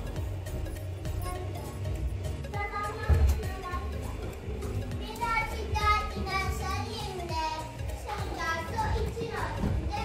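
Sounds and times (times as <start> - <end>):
children talking and calling: 0.9 - 10.0.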